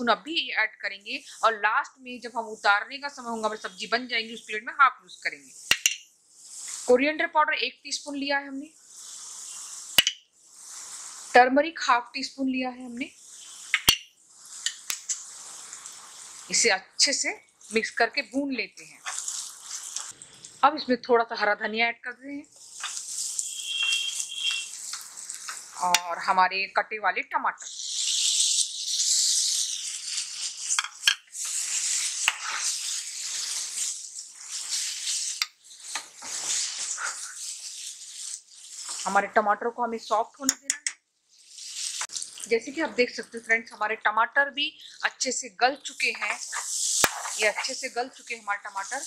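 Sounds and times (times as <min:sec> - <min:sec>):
onions sizzling in hot oil: 0:00.0 - 0:20.7, 0:22.2 - 0:49.0
spatula clicking against pan: 0:05.7 - 0:06.0, 0:10.0 - 0:10.2, 0:40.5 - 0:41.0.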